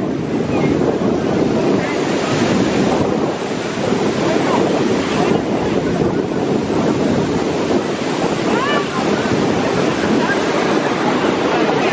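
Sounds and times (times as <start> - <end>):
choppy river water: 0.0 - 11.9
wind buffeting microphone: 0.0 - 11.9.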